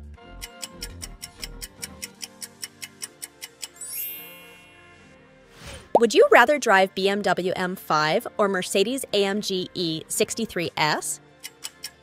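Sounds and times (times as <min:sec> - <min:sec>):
background music: 0:00.0 - 0:12.0
bright chime: 0:03.8 - 0:05.0.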